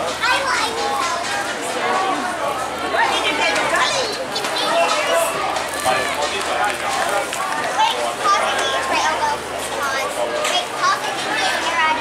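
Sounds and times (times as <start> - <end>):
girls calling and chattering: 0.0 - 12.0.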